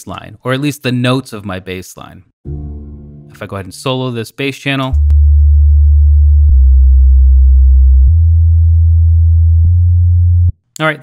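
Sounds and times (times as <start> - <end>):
sub-bass synthesizer notes: 5.0 - 10.6.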